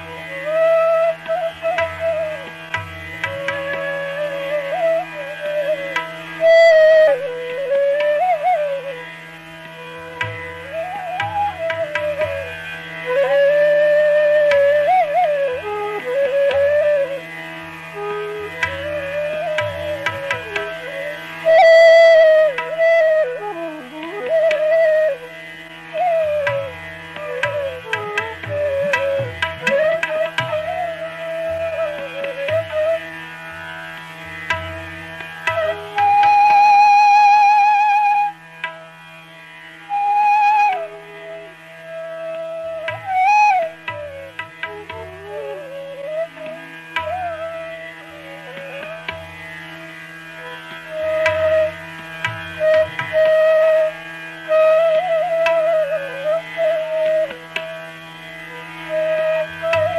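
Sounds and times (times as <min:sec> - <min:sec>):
bamboo flute melody: 0:00.0 - 0:59.9
low tabla strokes: 0:00.0 - 0:59.9.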